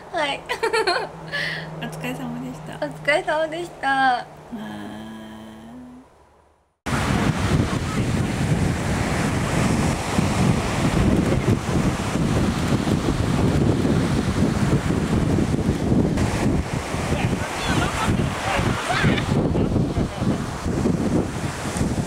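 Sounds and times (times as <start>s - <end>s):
surf breaking: 6.9s - 22.0s
wind buffeting microphone: 6.9s - 22.0s.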